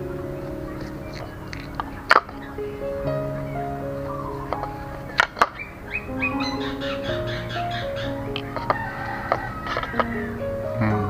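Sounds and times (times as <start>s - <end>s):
background music with stepping melody: 0.0s - 11.0s.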